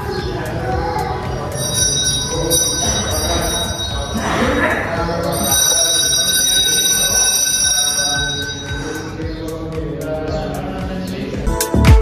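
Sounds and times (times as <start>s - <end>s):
temple bells ringing: 1.4s - 9.2s.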